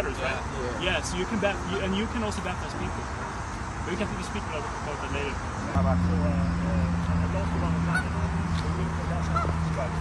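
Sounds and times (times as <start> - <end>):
steady low drone: 5.6 - 10.0
geese honking: 7.0 - 8.4, 9.2 - 9.6.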